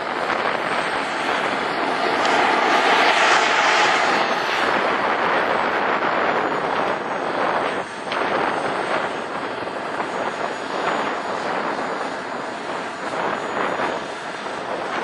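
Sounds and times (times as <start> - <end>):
model jet turbine engine running: 0.0 - 15.0.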